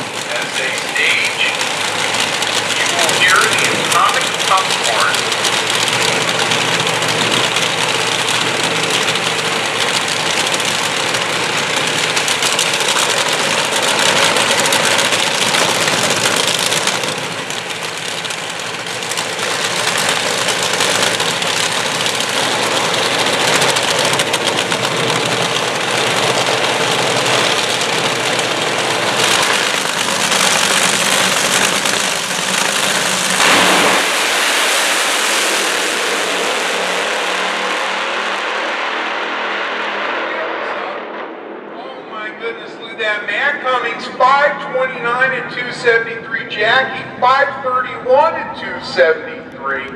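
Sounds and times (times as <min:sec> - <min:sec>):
dragster engines roaring: 0:00.0 - 0:49.9.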